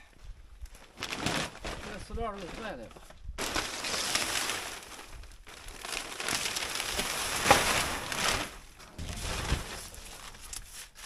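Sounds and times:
plastic sheeting crinkling: 0.7s - 11.0s.

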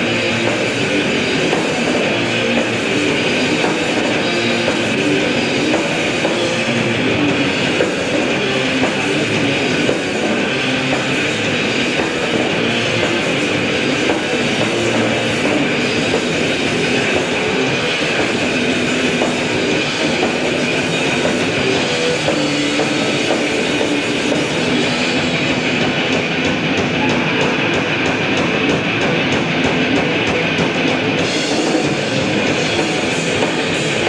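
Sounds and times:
distorted electric guitars: 0.0s - 34.0s
drums: 0.0s - 34.0s.

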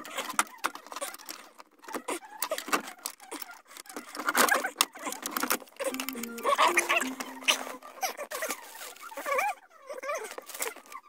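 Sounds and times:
clicks scrapes and rattles: 0.0s - 6.6s.

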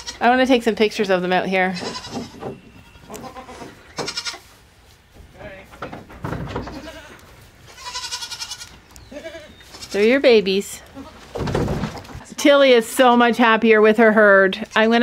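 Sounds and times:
goats bleating: 0.0s - 0.2s, 1.8s - 4.5s, 6.6s - 10.2s.

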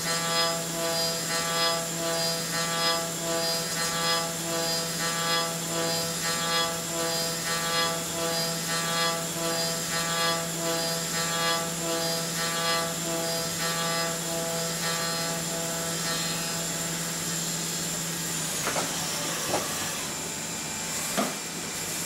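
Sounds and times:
milling machine cutting metal: 0.0s - 22.0s.

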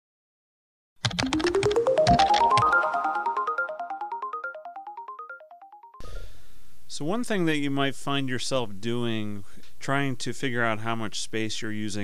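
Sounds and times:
chiming jingle notes: 1.2s - 6.0s
faint room hiss: 6.0s - 12.0s.

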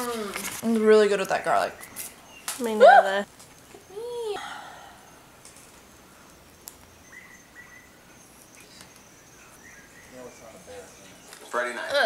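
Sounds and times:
high insect whine: 1.8s - 12.0s.

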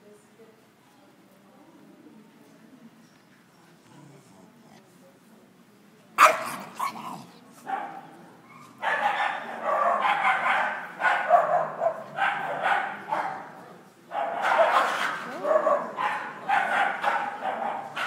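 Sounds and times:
dog barking: 6.2s - 18.0s.

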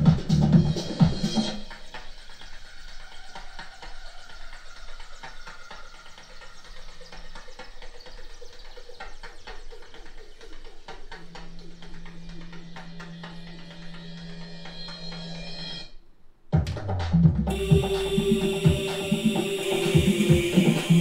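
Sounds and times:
low steady synthesizer note: 10.6s - 16.0s, 17.5s - 21.0s.

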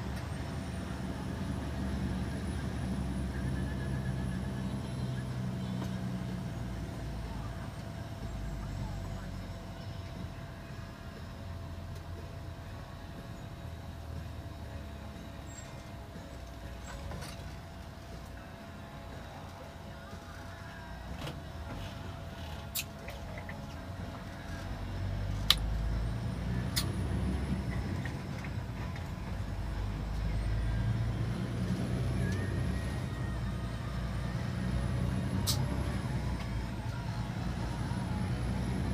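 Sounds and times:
vehicle engine and road rumble: 0.0s - 38.9s.

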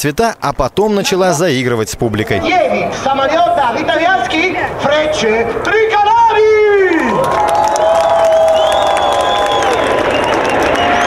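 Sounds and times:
jet aircraft flying past: 0.7s - 11.0s
crowd cheering: 5.6s - 11.0s.

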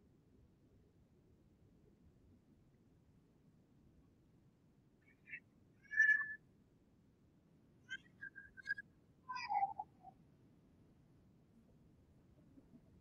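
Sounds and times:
high whistled chirps: 5.9s - 6.4s, 8.0s - 10.1s.

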